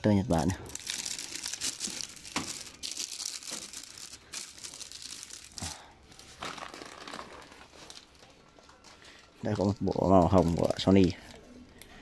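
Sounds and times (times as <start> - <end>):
plastic wrap crinkling: 0.4 - 11.4.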